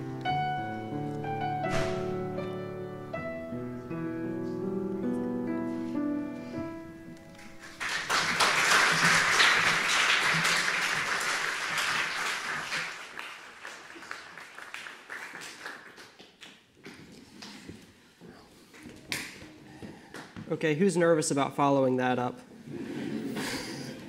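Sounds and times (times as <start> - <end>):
piano chord: 0.0 - 7.9
audience applauding: 7.4 - 16.8.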